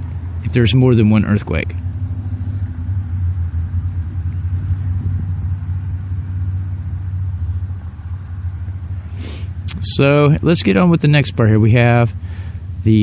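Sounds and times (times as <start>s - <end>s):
low rumbling hum: 0.0s - 13.0s.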